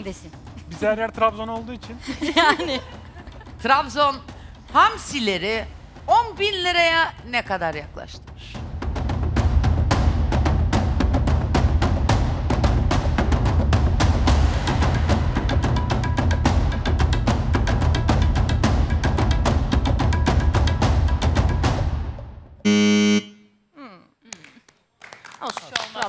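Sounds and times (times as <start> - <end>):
suspense drum roll with timpani: 5.5 - 21.9
loud buzzer tone: 22.6 - 23.6.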